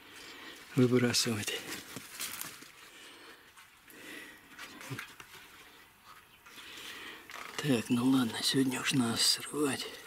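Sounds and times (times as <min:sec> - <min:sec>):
leaves rustling against camera: 0:00.0 - 0:03.8, 0:04.5 - 0:10.0.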